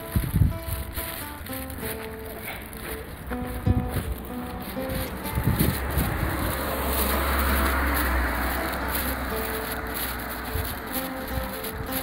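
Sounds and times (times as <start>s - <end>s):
vehicle passing on street: 0.0s - 12.0s
steady low rumble: 1.7s - 12.0s.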